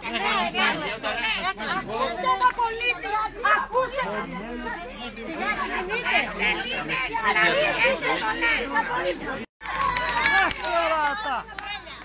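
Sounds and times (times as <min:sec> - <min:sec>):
crowd talking over one another: 0:00.0 - 0:12.0.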